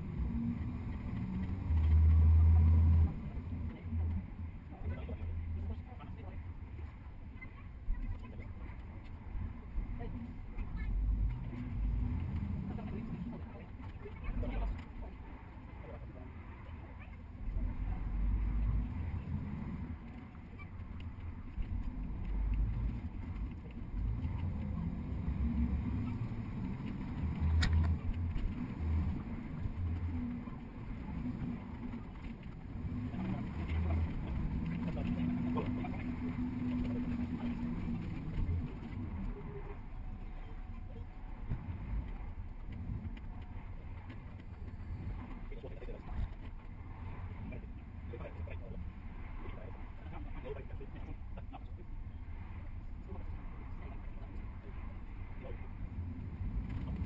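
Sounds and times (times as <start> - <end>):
steady engine hum: 0.0 - 57.0
traffic engines and tyres rumbling: 0.0 - 57.0.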